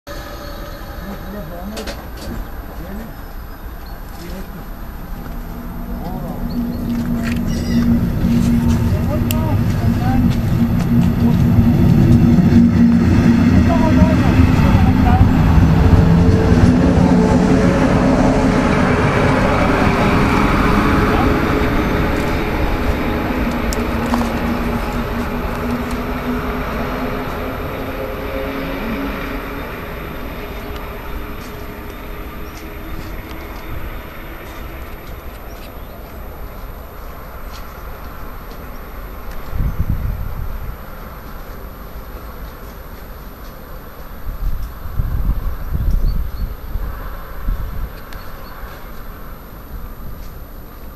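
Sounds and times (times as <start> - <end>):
low rumbling bursts: 0.0 - 41.2
electric locomotive hum: 0.0 - 50.9
train passing: 0.0 - 50.9.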